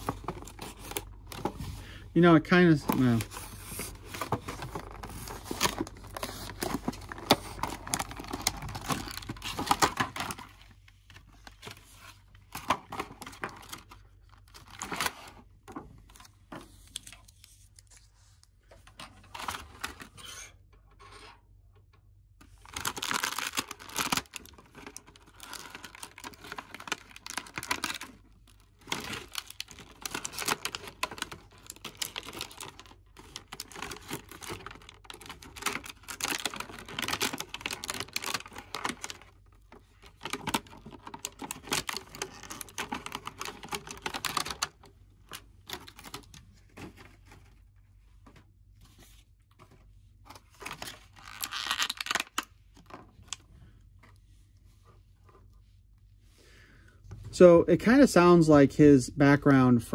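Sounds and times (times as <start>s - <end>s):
plastic packaging crinkling and tearing: 0.0s - 15.4s, 22.4s - 47.8s, 50.3s - 53.5s.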